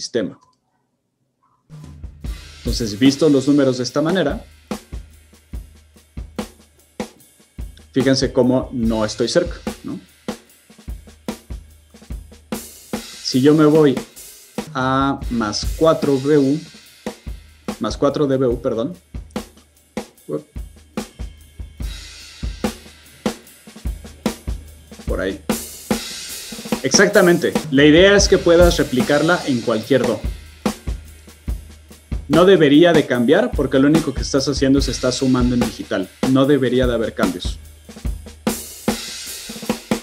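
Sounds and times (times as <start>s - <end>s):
cymbal wash: 1.7s - 17.9s, 19.0s - 40.0s
drum kit playing: 1.7s - 40.0s.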